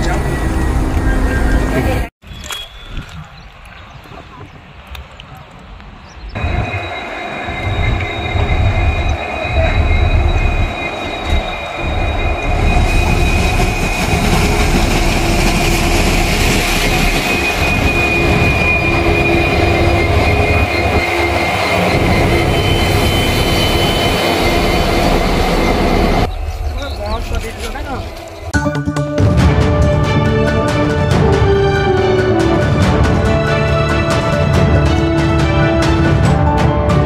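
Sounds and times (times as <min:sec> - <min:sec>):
high-pitched whine: 0:06.4 - 0:28.6.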